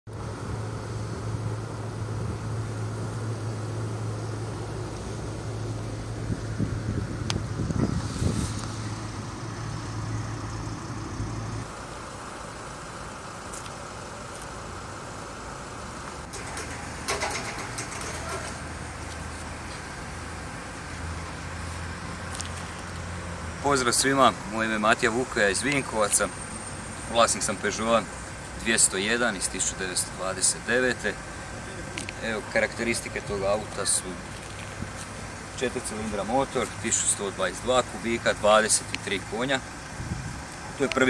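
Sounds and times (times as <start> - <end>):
low engine hum: 0.1 - 41.0
outdoor background noise: 0.1 - 41.0.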